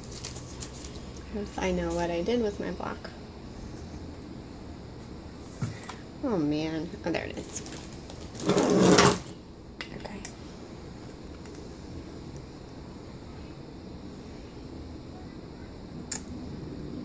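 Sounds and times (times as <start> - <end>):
low room noise: 0.0 - 17.0.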